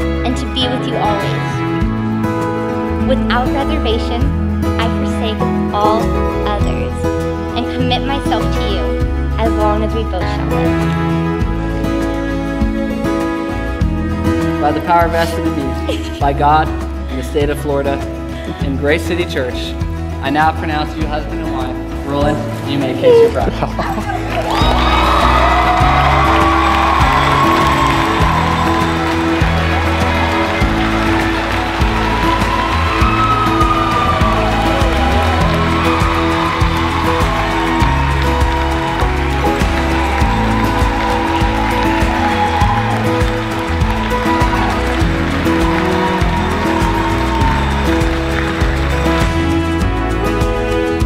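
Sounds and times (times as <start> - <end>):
background music with bass line: 0.0 - 51.0.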